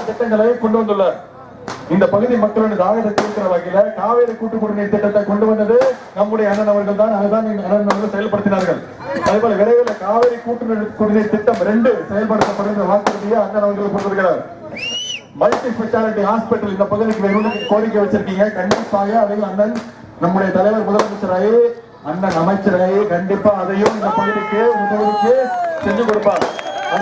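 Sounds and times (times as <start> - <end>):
man speaking into a microphone: 0.0 - 14.6, 15.3 - 27.0
sharp cracks: 1.6 - 2.0, 3.2 - 3.6, 15.4 - 15.9, 18.6 - 20.0, 23.8 - 24.2, 25.8 - 27.0
short rising whistle: 14.7 - 15.3.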